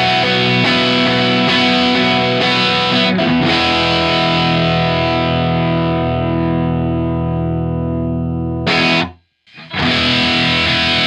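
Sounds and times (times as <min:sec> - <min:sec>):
distorted electric guitar chord: 0:00.0 - 0:11.0.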